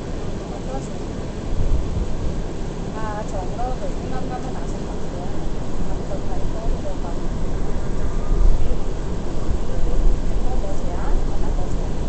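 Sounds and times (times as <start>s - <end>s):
subway car rumbling on track: 1.5s - 12.0s.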